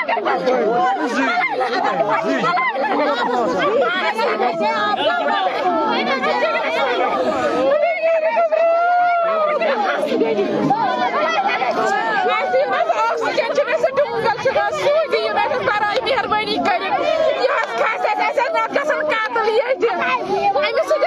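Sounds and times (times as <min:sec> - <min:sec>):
women talking agitatedly: 0:00.0 - 0:21.0.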